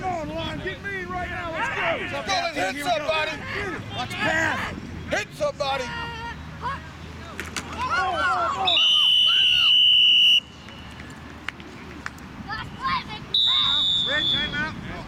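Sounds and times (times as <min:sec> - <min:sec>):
people shouting: 0:01.2 - 0:04.8, 0:07.8 - 0:09.7
referee's whistle blasts: 0:08.6 - 0:10.9, 0:13.3 - 0:14.6.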